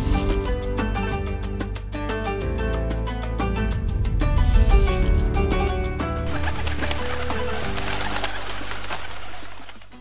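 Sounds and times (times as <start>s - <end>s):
doves cooing: 6.3s - 9.8s
wings fluttering: 6.3s - 10.0s.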